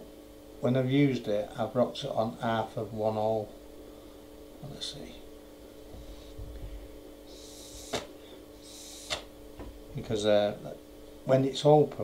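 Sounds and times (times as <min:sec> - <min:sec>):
air hissing through airflow holes: 0:05.9 - 0:06.6, 0:07.3 - 0:09.4
sharp click: 0:09.1 - 0:09.3.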